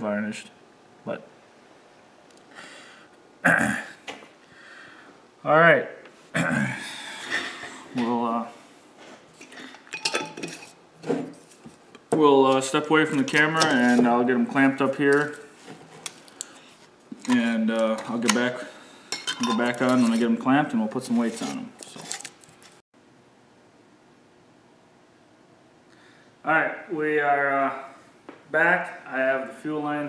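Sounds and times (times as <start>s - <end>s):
glass jars clinking: 9.4s - 10.8s, 19.1s - 20.2s.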